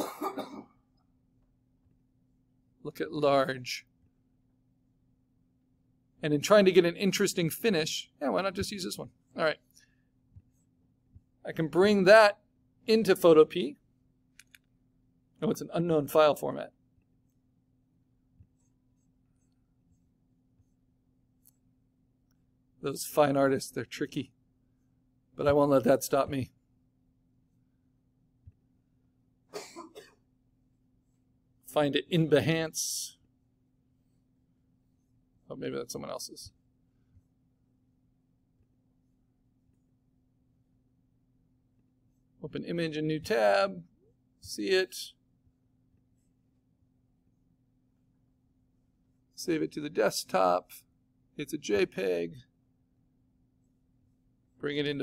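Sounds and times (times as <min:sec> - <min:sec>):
man clearing his throat: 0:00.0 - 0:00.8
man coughing: 0:00.0 - 0:00.8, 0:29.6 - 0:30.2
faint steady hum: 0:00.0 - 0:55.0.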